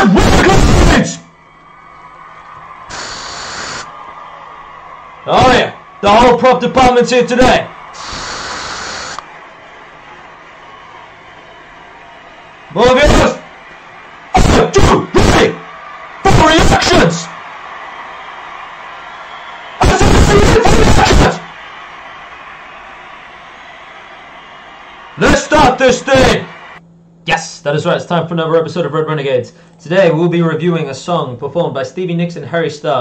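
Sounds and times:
man shouting: 0.0 - 1.2, 12.7 - 13.4, 14.3 - 17.3, 19.8 - 21.5
spray hiss: 2.9 - 3.8, 8.0 - 9.2.

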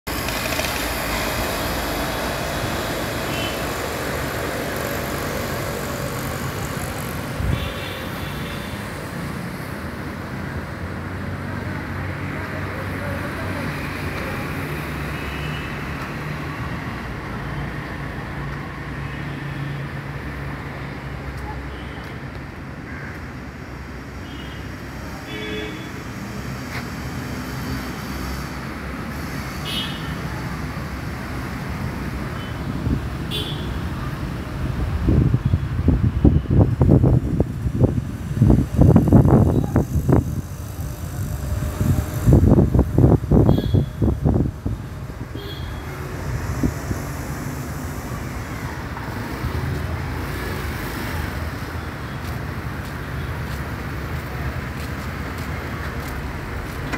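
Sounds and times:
road traffic rumble: 0.0 - 56.9
loud irregular rumbling bursts: 0.1 - 7.7.

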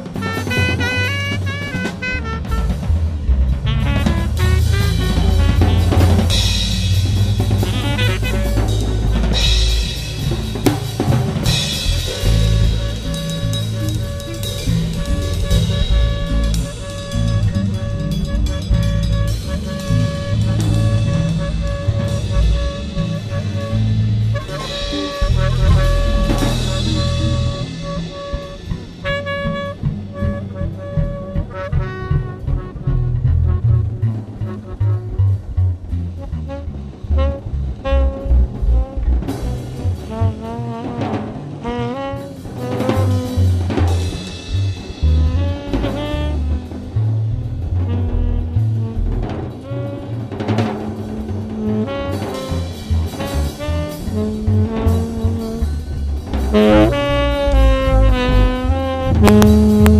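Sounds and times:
bass: 0.0 - 59.9
drum kit: 0.0 - 59.9
tenor saxophone: 0.0 - 59.9.

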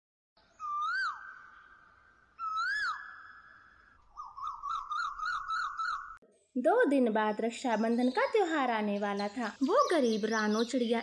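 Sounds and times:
whistled bird call: 0.5 - 6.2.

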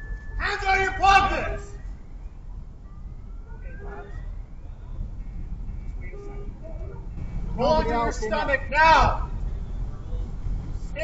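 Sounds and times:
distant siren wailing: 0.0 - 10.6
vehicle engines idling: 0.0 - 11.0.

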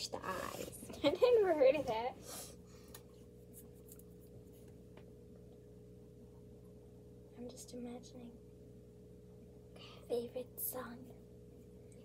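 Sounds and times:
thin steady hum: 0.0 - 12.0.

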